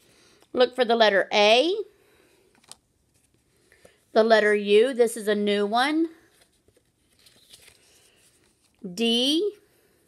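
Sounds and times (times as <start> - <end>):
paper cards rustling: 2.5 - 4.0, 6.2 - 8.9.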